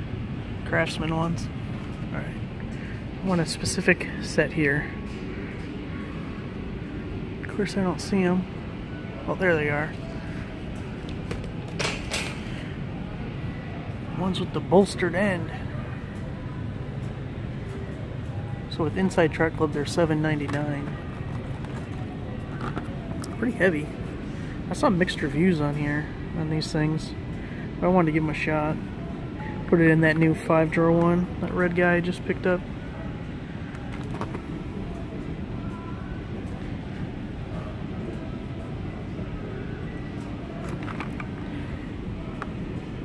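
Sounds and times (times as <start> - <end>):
store background hum: 0.0 - 43.0.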